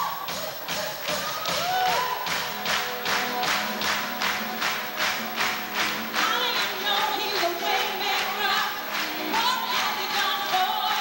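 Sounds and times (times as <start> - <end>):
percussion steady beat: 0.0 - 11.0
held keyboard chord: 2.4 - 10.1.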